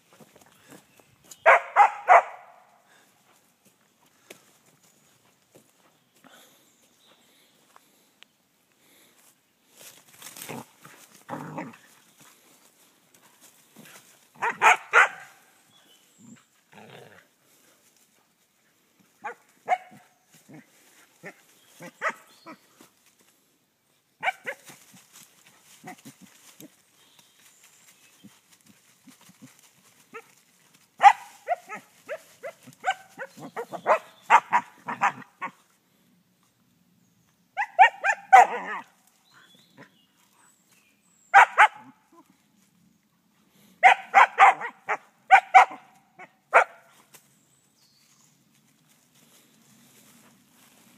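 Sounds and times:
dog play-barking: 1.5 - 2.5, 14.4 - 15.4, 31.0 - 35.6, 37.6 - 38.9, 43.8 - 45.8
stick rustling in fallen leaves: 24.5 - 33.3, 48.0 - 50.9.

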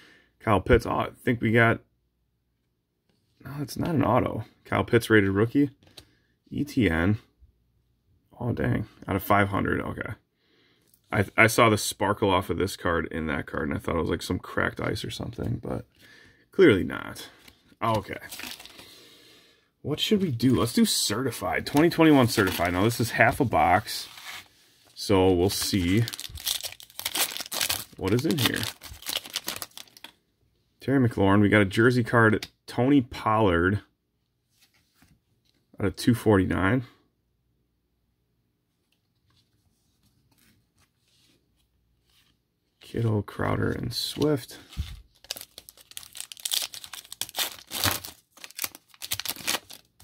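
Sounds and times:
foil wrapper crinkling and tearing: 17.8 - 18.9, 21.6 - 24.2, 25.4 - 30.1, 44.7 - 50.0.

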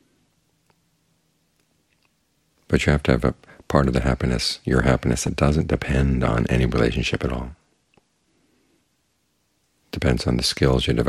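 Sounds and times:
faint click: 0.6 - 0.9.

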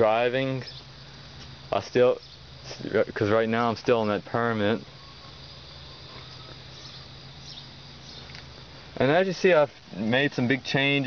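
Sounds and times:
faint even hiss: 0.0 - 11.0
steady low hum: 0.0 - 11.0
faint high chirps: 4.8 - 8.4.

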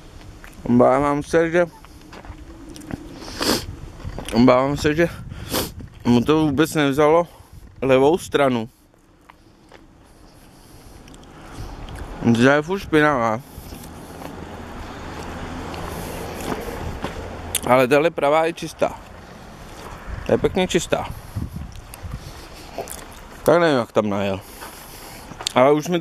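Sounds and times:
sharp intake of breath: 3.0 - 3.8, 5.2 - 5.8, 24.4 - 25.4
bus engine idling: 8.8 - 26.0.

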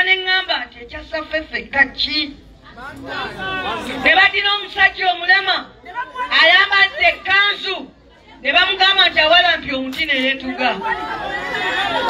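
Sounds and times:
woman speaking into a microphone: 0.0 - 2.8, 4.0 - 11.0
background chatter: 0.0 - 12.0.

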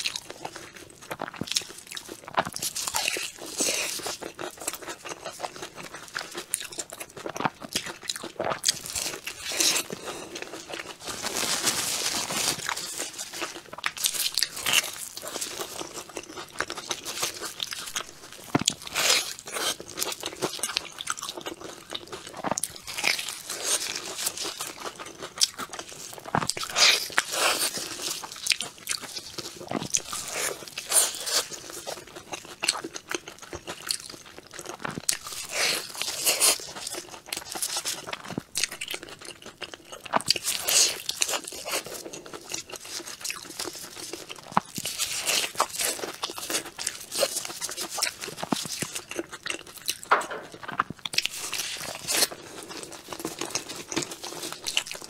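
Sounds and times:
chewing with crisp crunches: 0.0 - 55.0.

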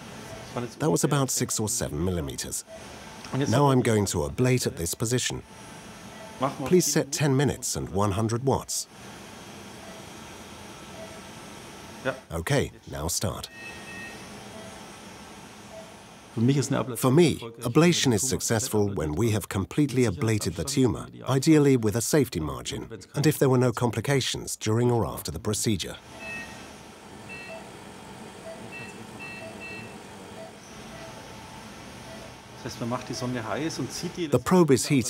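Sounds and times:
machinery hum: 0.0 - 17.0, 26.0 - 34.4
equipment and ventilation hiss: 0.0 - 35.0
high two-tone beeps: 13.5 - 14.8, 26.2 - 26.6, 27.3 - 27.7, 28.4 - 31.1
low electronic beep: 27.3 - 27.7, 28.4 - 31.1.

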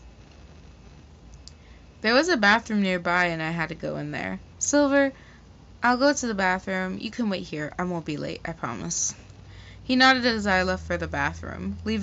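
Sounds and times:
steady low hum: 0.0 - 12.0
faint small clicks: 0.2 - 1.7.

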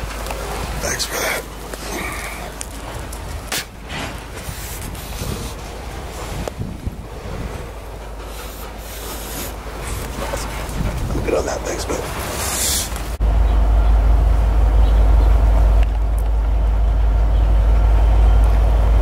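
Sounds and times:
dry grass and brush rustling: 0.0 - 13.6
low wind rumble: 0.0 - 19.0.

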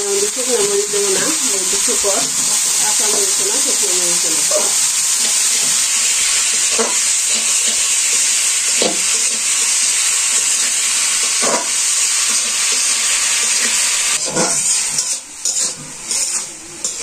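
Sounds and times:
vegetables sizzling in a wok: 0.0 - 17.0
metal spatula stirring: 14.2 - 17.0.

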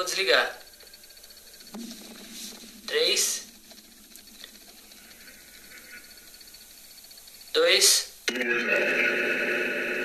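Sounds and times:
droning held pitches: 0.8 - 7.4.

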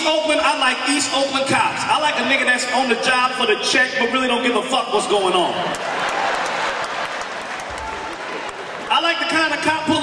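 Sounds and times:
crowd noise: 0.0 - 10.0
audience applauding: 5.7 - 9.5.

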